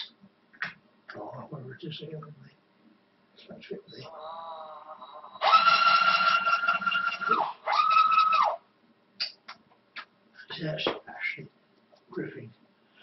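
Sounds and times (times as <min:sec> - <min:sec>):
cordless drill motor whining: 0:04.4 - 0:08.5.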